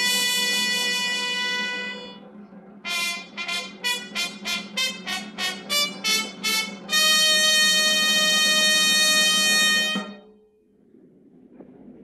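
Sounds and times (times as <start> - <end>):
fanfare: 0.0 - 2.2, 2.9 - 10.3
low steady drone: 0.0 - 12.0.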